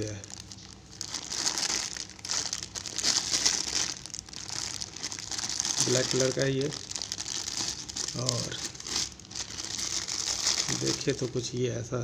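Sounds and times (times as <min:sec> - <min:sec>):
plastic bag crinkling: 0:00.0 - 0:11.6.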